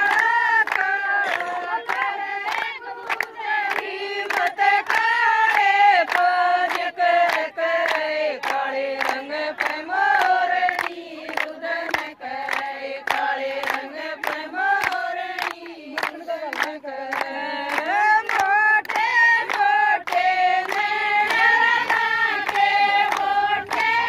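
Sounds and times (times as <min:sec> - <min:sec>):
rhythmic hand-clapping: 0:00.0 - 0:24.0
women singing folk song: 0:00.0 - 0:24.0.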